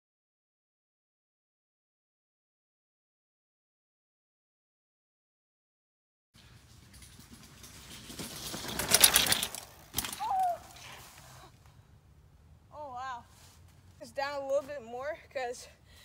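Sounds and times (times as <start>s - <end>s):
rider crying out: 10.0s - 11.3s.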